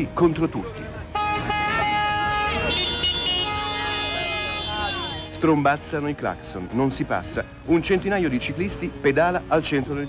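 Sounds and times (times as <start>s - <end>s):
car horns honking: 1.1s - 5.7s
higher-pitched horn: 1.2s - 5.6s.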